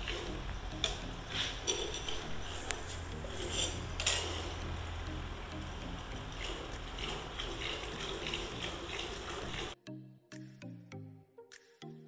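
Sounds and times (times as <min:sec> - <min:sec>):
steady low hum: 0:00.0 - 0:09.8
faint background music: 0:00.0 - 0:12.0
milk squirting into steel bucket: 0:06.3 - 0:09.8.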